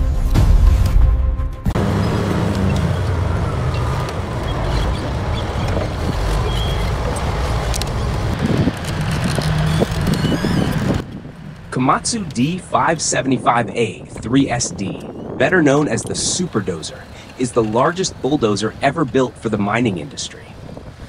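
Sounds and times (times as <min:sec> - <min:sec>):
heavy diesel engine rumbling: 0:01.8 - 0:21.0
people talking indistinctly: 0:11.8 - 0:20.1.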